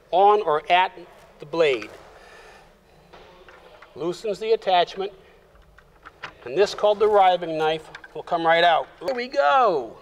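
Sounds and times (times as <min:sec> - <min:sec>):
lever clicks and rattles: 0:04.9 - 0:09.4.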